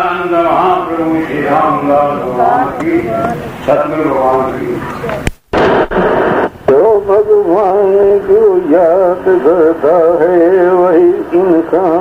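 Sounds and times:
man singing: 0.0 - 5.0, 6.7 - 12.0
recording hiss: 0.0 - 12.0.

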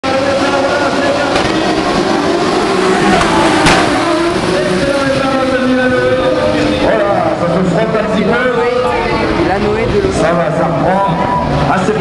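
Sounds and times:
racing car engines revving: 0.0 - 12.0
sharp crack: 3.1 - 4.2.

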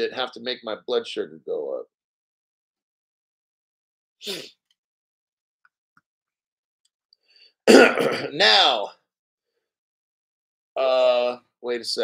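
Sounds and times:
man sneezing: 4.2 - 4.5, 7.7 - 8.5.

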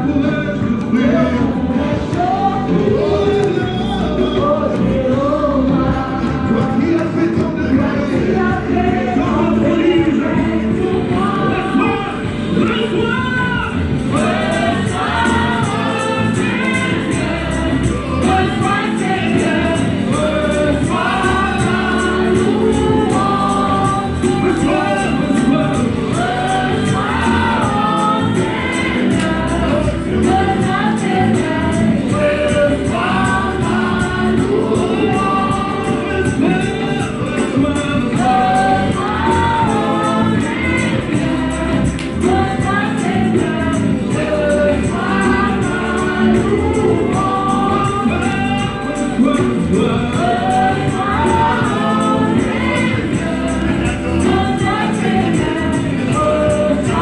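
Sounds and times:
band accompaniment: 0.0 - 57.0
steady percussion beat: 0.0 - 57.0
voices singing gospel song: 0.0 - 57.0.

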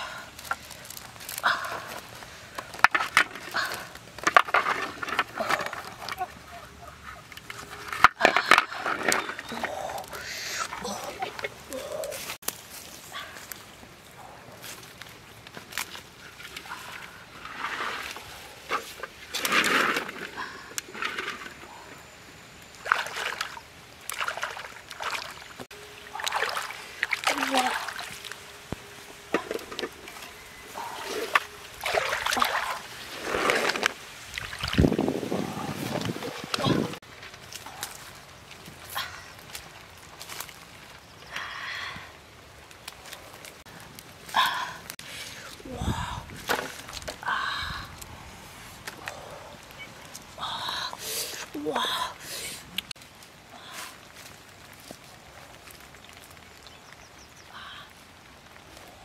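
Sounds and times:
water sloshing and splashing: 15.6 - 38.0.

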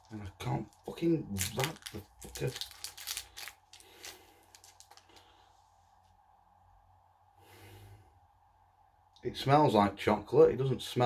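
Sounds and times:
wrapper crinkling: 0.0 - 5.3.

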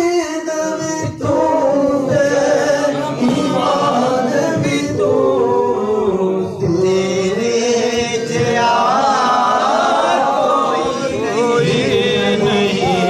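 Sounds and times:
person singing devotional hymn unaccompanied: 0.0 - 13.0.

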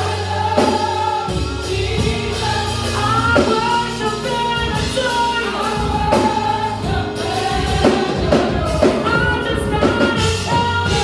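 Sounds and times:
backing singers: 0.0 - 11.0
drum beat: 0.0 - 11.0
woman singing into microphone: 1.8 - 11.0.

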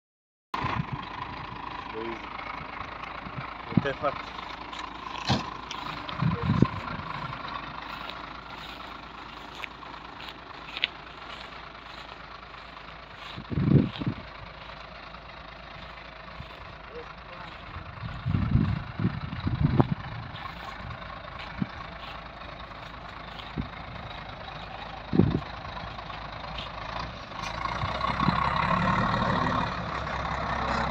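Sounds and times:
diesel engine idling: 0.6 - 30.9
short low thumps: 17.6 - 22.0.

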